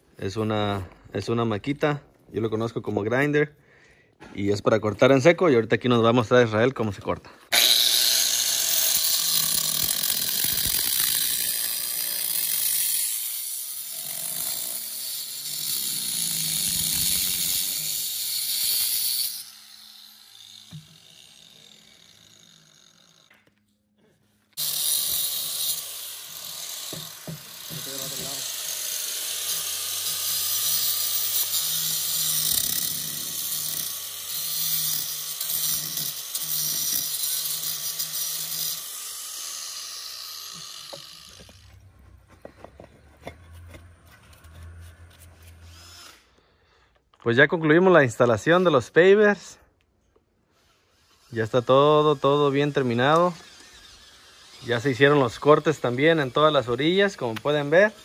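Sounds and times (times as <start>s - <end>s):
angle grinder cutting concrete: 7.5s - 23.4s, 24.6s - 46.3s, 50.5s - 58.0s.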